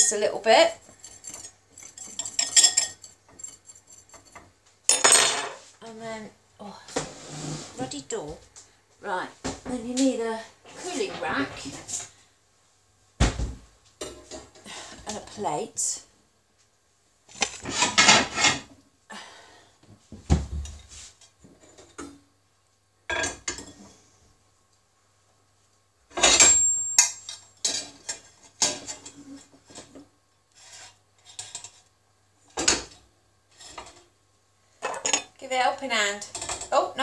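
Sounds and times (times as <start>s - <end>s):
clatter of kitchenware on cooker top: 0.8s - 5.6s, 17.3s - 18.7s, 23.1s - 24.0s, 26.1s - 30.1s, 30.8s - 31.8s, 32.5s - 34.1s, 34.8s - 35.4s, 36.2s - 36.8s.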